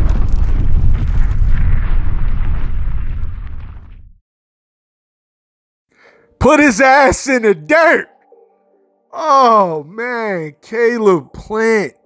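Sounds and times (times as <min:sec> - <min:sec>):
deep rumbling fiery boom: 0:00.0 - 0:04.2.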